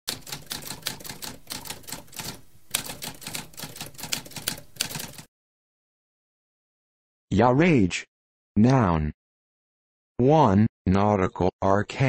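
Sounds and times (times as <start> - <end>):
typewriter typing: 0.1 - 5.3.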